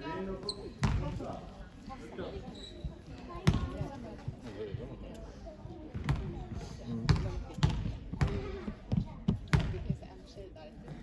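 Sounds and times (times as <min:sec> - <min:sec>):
basketball bouncing on floor: 0:07.1 - 0:09.9.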